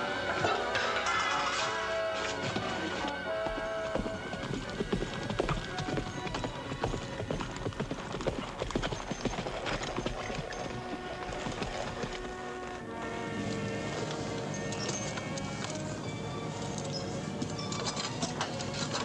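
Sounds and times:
orchestral film score: 0.0 - 7.7, 10.7 - 19.0
horses' hoofbeats clopping: 0.2 - 19.0.

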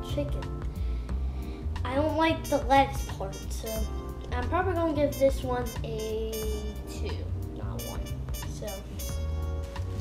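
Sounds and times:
background music with bass line: 0.0 - 10.0
child speaking a word: 1.8 - 9.0.

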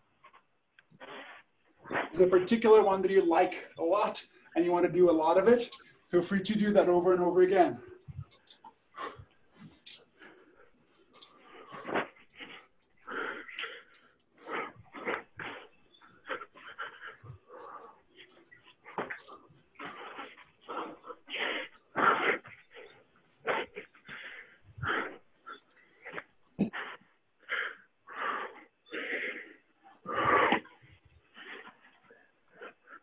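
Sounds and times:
person breathing heavily and moaning: 7.8 - 33.0.

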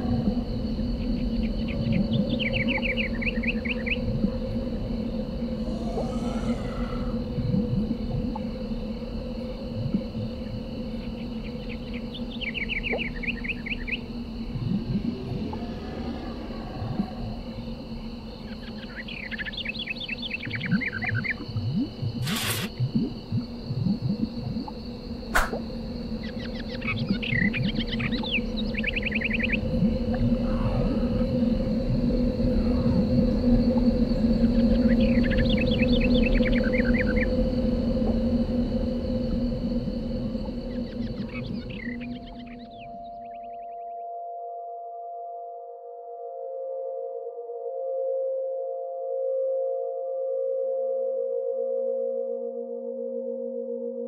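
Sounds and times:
low ambient drone: 0.0 - 54.0
rapid bird-like chirps: 18.4 - 22.9, 25.4 - 29.7
brief hiss: 22.2 - 22.7
sharp click: 25.3 - 25.6.

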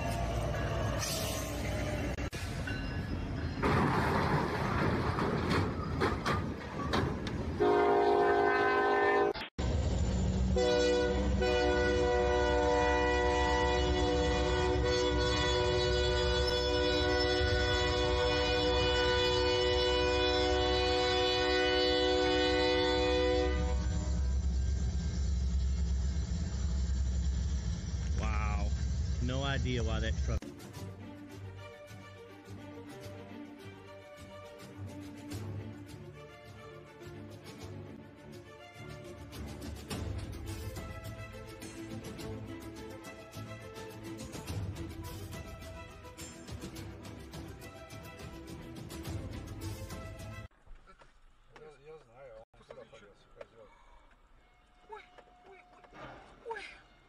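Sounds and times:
train rumble: 0.0 - 30.4
train horn blast: 7.6 - 9.5, 10.5 - 24.4.

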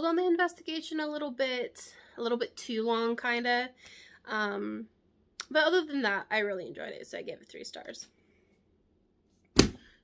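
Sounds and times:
sharp thump: 9.5 - 9.9.

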